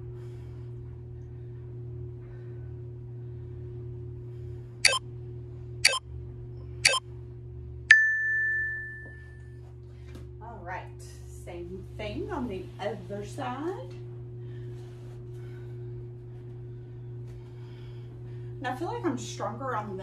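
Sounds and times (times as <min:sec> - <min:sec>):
steady low hum: 0:00.0 - 0:20.0
bell-like ding: 0:07.9 - 0:09.4.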